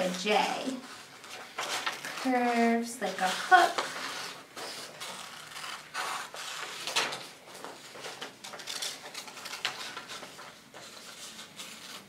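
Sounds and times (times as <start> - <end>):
paper rustling and crinkling: 0.0 - 12.0.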